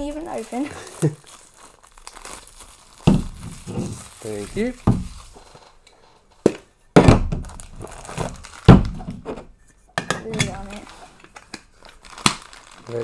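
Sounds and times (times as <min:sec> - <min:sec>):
packaging crinkling: 0:00.0 - 0:06.1, 0:07.4 - 0:09.3, 0:10.5 - 0:13.0.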